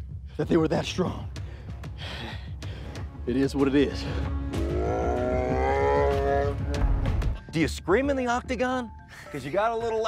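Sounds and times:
long drawn-out cry: 4.6 - 6.8.

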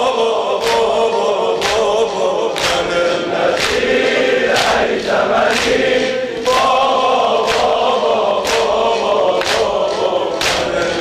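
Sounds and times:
crowd chanting in unison: 0.0 - 11.0
chest-beating slaps: 1.6 - 11.0.

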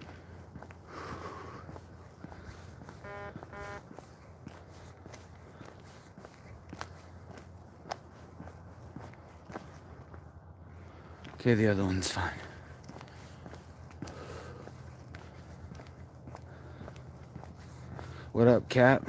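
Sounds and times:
footsteps on asphalt: 0.0 - 19.0
short pitched tones: 3.0 - 4.0.

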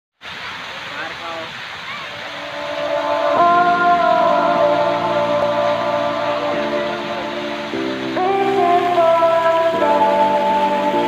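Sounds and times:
fountain water spraying: 0.2 - 11.0
faint crowd chatter: 0.4 - 10.4
music with sustained chords: 2.1 - 11.0.

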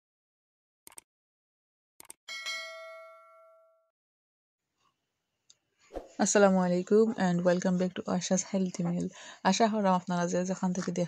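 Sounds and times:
bell ding ringing: 2.3 - 3.9.

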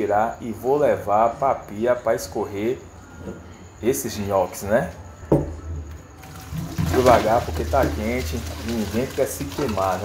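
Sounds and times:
water pouring and splashing: 6.2 - 10.0.

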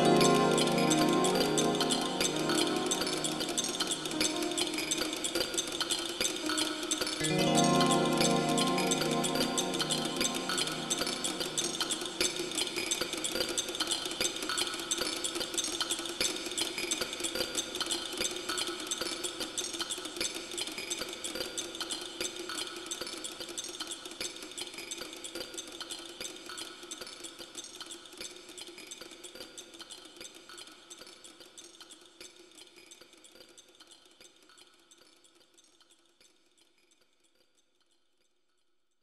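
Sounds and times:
held low synth tone: 0.0 - 5.6, 6.4 - 12.6
synthesized chimes shimmering: 0.0 - 5.7, 6.4 - 12.8.

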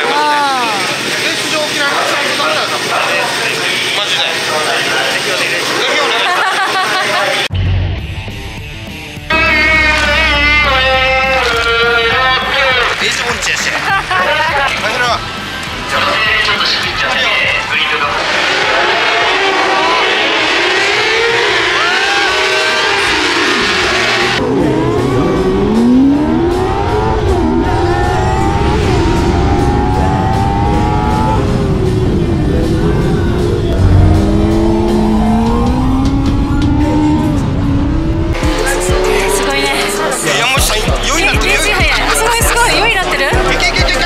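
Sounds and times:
background music: 7.5 - 44.0
motorcycle engine revving: 8.8 - 13.4, 18.2 - 40.2.

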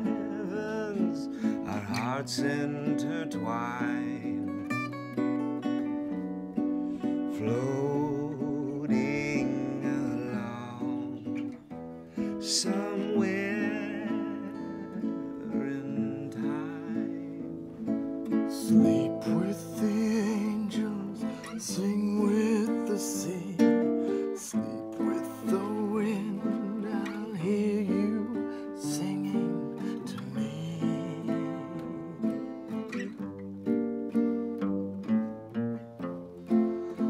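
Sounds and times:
man singing long held notes: 0.0 - 4.8, 7.0 - 17.8, 18.4 - 33.2
acoustic guitar strummed and plucked: 0.0 - 37.0.

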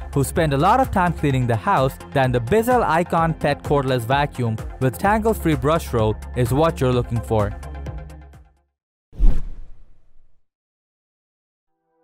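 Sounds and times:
whoosh transition: 9.2 - 10.4.

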